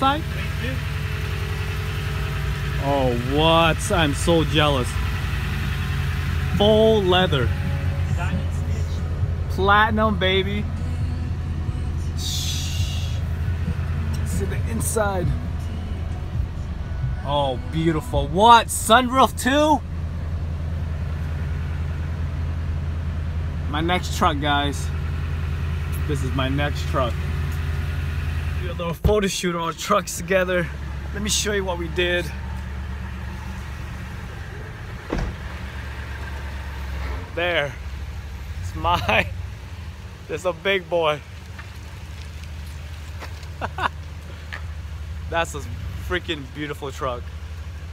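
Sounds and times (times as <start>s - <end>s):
truck engine idling: 0.0s - 47.9s
short thump: 35.0s - 35.6s.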